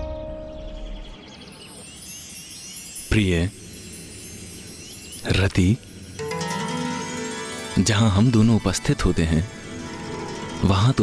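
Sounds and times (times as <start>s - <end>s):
high tinkling chimes: 0.5s - 11.0s.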